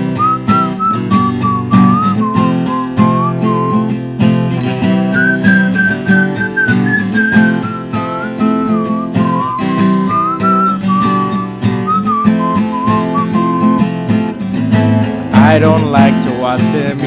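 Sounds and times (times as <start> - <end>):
whistled melody: 0.0 - 14.4
acoustic guitar strummed: 0.0 - 17.0.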